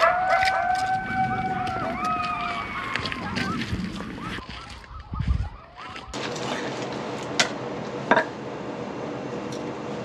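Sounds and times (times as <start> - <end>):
second higher wolf howl: 0.0 - 4.7
wolf howling: 0.0 - 6.2.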